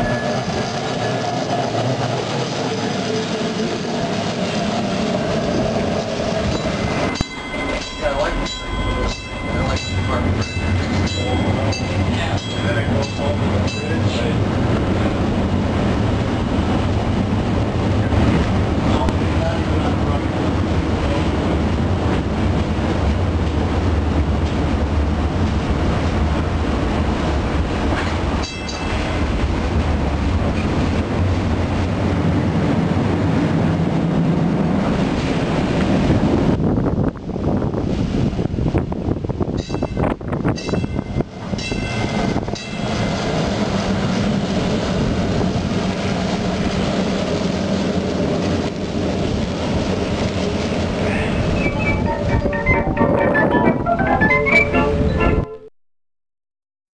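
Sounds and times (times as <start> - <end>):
streetcar rumbling on rails: 0.0 - 55.7.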